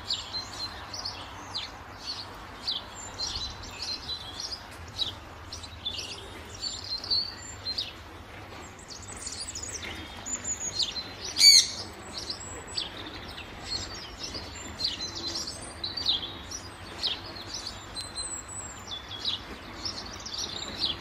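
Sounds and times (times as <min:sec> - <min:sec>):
songbirds chirping: 0:00.0 - 0:21.0.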